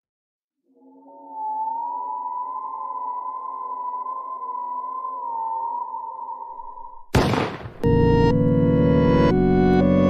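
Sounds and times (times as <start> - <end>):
eerie high electronic tone: 0.6 - 7.0.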